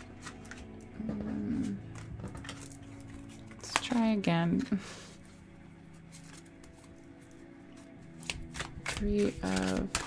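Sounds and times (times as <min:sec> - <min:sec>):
cards clicking and sliding on wood: 0:07.8 - 0:10.0.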